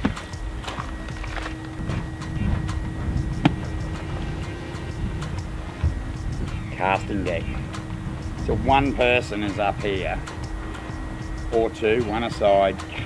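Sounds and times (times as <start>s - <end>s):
faint steady hum: 0.0s - 13.0s
low outdoor rumble: 0.0s - 13.0s.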